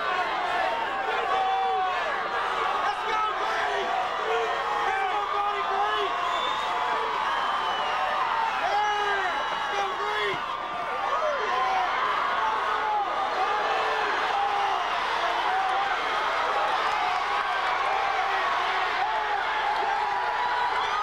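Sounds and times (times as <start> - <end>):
stadium crowd shouting and cheering: 0.0 - 21.0.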